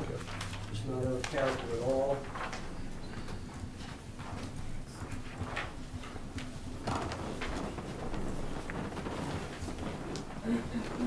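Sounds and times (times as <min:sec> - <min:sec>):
low room hum: 0:00.0 - 0:11.0
paper rustling: 0:00.0 - 0:11.0.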